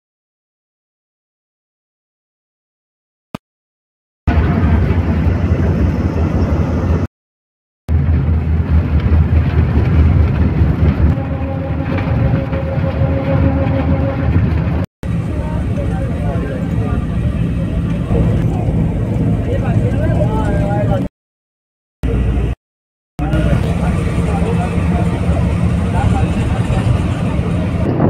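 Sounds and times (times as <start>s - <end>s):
vehicle road rumble from inside: 4.3s - 7.1s, 7.9s - 21.1s, 23.2s - 28.0s
voices talking: 15.2s - 21.1s, 23.2s - 27.9s.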